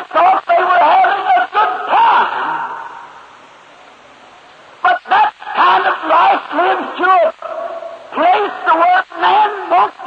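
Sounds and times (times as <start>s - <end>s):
tape hiss: 0.0s - 10.0s
man speaking: 4.8s - 10.0s.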